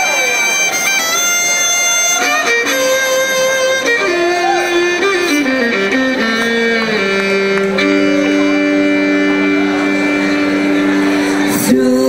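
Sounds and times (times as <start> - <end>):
fiddle bowing held notes: 0.0 - 11.6
bluegrass band sustained chord: 0.0 - 12.0.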